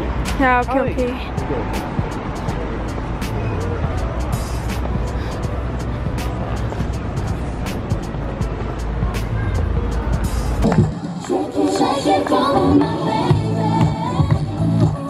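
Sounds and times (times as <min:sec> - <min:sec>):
background music: 0:00.0 - 0:15.0
low rumble of traffic: 0:00.0 - 0:15.0.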